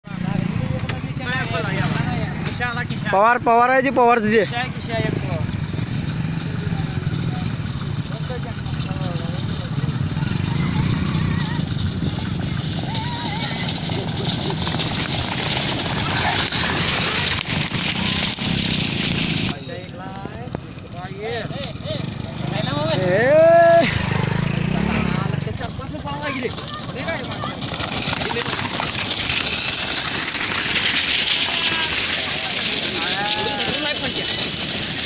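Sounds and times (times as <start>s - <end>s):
voices talking: 0.0s - 35.0s
small engine running: 0.1s - 19.6s, 20.7s - 35.0s
cart wheels rolling: 0.1s - 35.0s
hooves galloping: 3.8s - 19.6s, 25.4s - 35.0s
people shouting: 10.2s - 11.7s, 12.7s - 13.9s, 22.8s - 24.0s, 31.4s - 34.1s.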